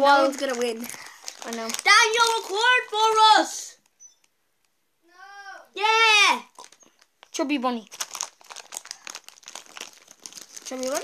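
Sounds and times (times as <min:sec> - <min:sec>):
crinkling and rustling: 0:00.0 - 0:03.9, 0:06.4 - 0:11.0.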